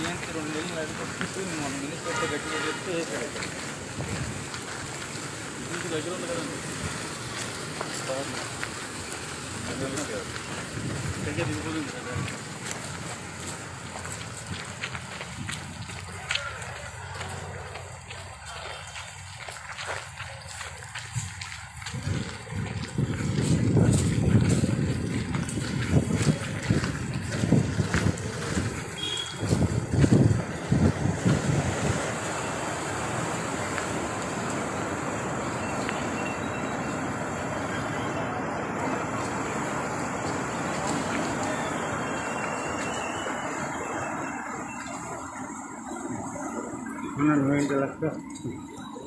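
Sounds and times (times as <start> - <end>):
footsteps on dirt path: 0.0 - 49.0
wind buffeting microphone: 3.4 - 5.6, 10.2 - 16.5, 20.4 - 37.6.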